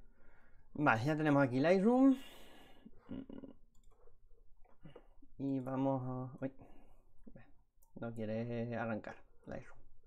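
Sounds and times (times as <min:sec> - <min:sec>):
man speaking: 0:00.8 - 0:02.2, 0:05.4 - 0:06.6, 0:07.4 - 0:09.8
breath: 0:02.2 - 0:03.0.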